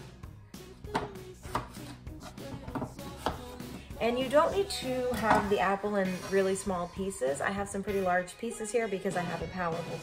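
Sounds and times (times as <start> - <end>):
knife slicing apple: 0.9 - 3.8.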